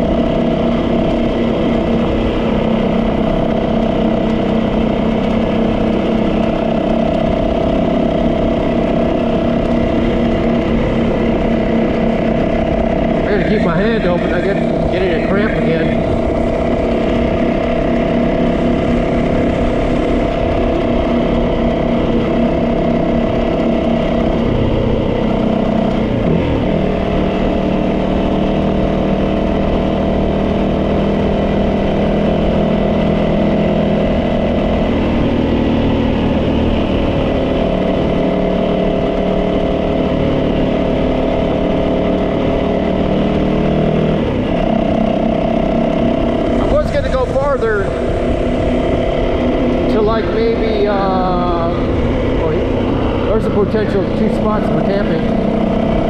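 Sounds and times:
motorcycle engine cruising: 0:00.0 - 0:56.0.

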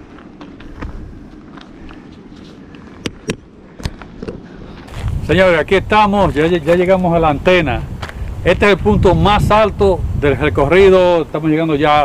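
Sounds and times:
footsteps on gravel: 0:00.0 - 0:08.9.

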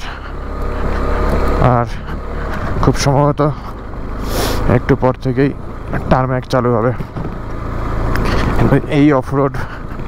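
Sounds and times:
motorcycle engine running: 0:00.0 - 0:10.0
tyres on gravel road: 0:00.0 - 0:10.0
man speaking: 0:01.6 - 0:03.8, 0:04.6 - 0:07.1, 0:08.5 - 0:09.9.

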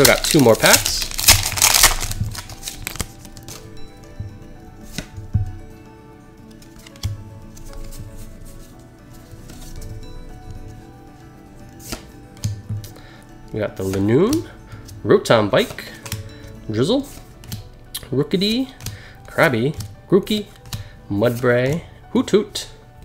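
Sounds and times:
foil wrapper crinkling and tearing: 0:00.0 - 0:03.6
soft background music: 0:00.0 - 0:23.0.

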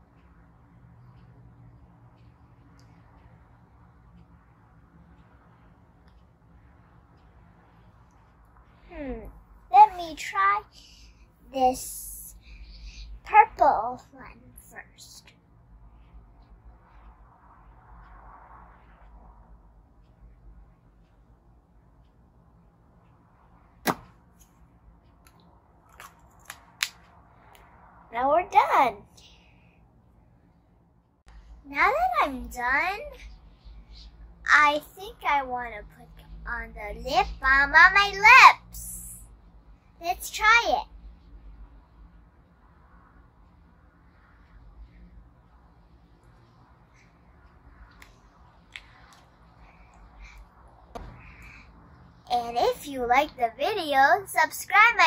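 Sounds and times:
sharp click: 0:23.8 - 0:24.5.

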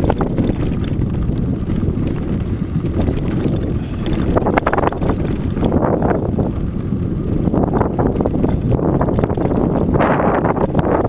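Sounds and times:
sharp rattling clicks: 0:00.0 - 0:11.0
wind buffeting microphone: 0:00.0 - 0:11.0.

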